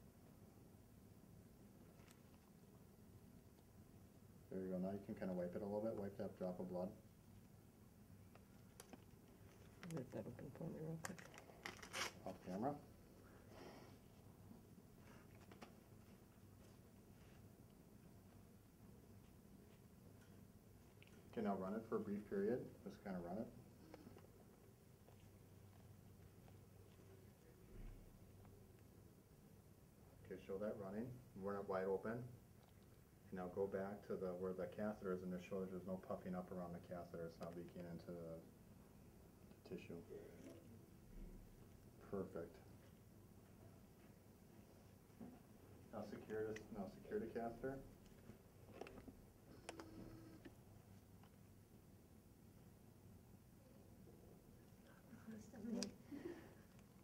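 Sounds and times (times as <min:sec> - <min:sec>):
faint low hum: 0:00.0 - 0:57.0
handling sounds: 0:10.9 - 0:12.6.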